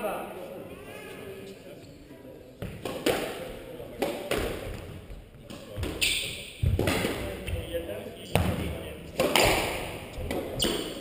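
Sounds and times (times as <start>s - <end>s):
squash ball impacts echoing: 2.6s - 11.0s.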